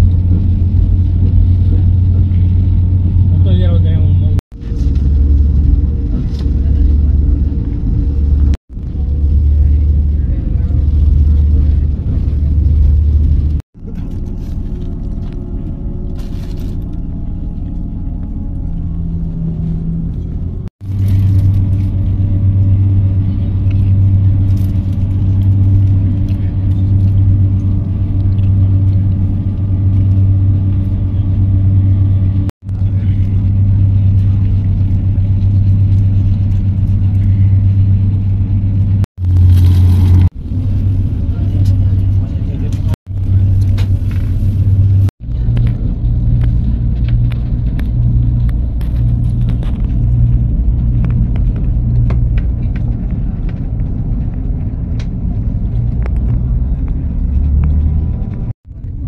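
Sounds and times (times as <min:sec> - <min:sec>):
train rumbling at speed: 0:00.0 - 0:59.0.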